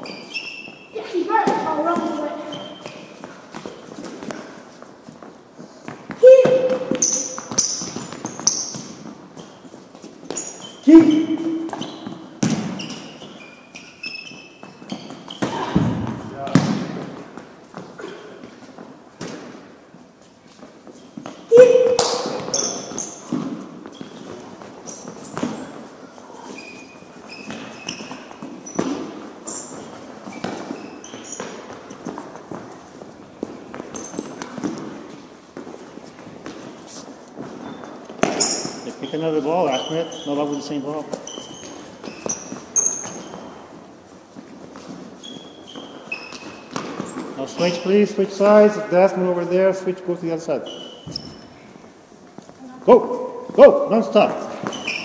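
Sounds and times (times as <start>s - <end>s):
sneakers squeaking on court: 0.0s - 49.7s, 50.5s - 55.0s
balls thudding: 1.3s - 19.8s, 20.6s - 26.0s, 26.6s - 48.9s.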